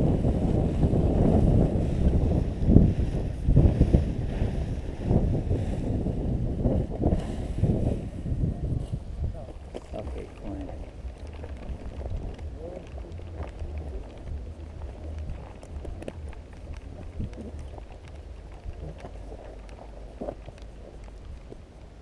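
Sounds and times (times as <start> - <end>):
microphone handling noise: 0.0 - 22.0
wind rumbling on microphone: 0.0 - 22.0.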